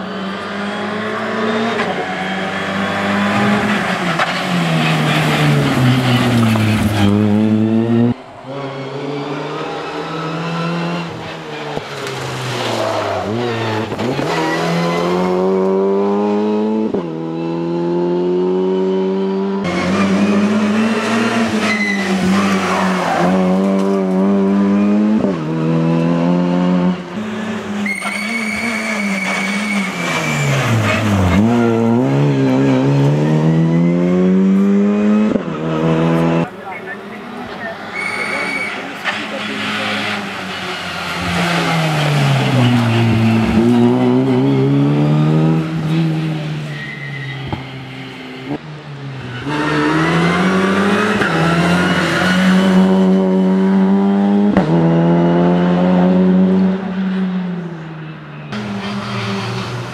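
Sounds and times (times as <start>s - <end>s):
rally car engine revving: 0.0s - 59.9s
high squeal: 8.3s - 10.0s, 27.8s - 32.0s, 37.8s - 39.8s, 46.6s - 47.9s.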